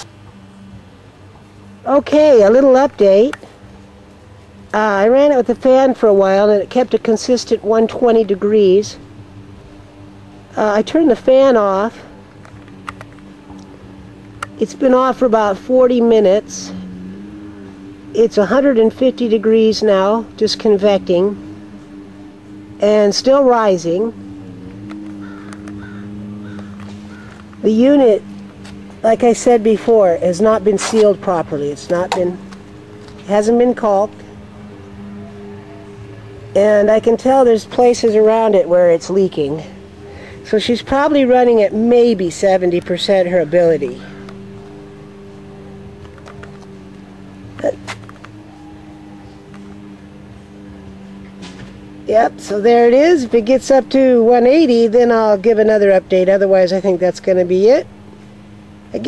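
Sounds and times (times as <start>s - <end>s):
steady low hum with tones: 0.0s - 59.0s
faint bird calls: 24.3s - 27.6s.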